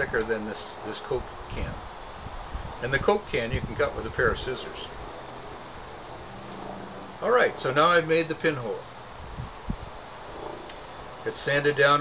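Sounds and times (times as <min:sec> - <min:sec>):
faint outdoor hiss: 0:00.0 - 0:12.0
wind buffeting microphone: 0:01.1 - 0:07.0, 0:09.2 - 0:10.6.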